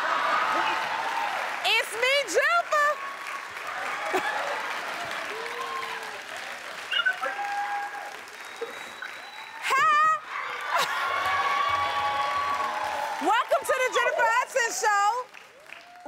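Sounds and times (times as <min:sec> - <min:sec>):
audience applauding and cheering: 0:00.0 - 0:16.0
shouts: 0:06.9 - 0:08.2, 0:09.6 - 0:15.1.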